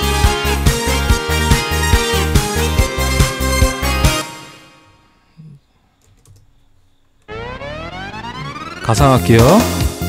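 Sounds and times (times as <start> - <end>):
karaoke music with rising synth sweep: 0.0 - 4.5, 7.3 - 10.0
faint clicks: 5.8 - 7.3.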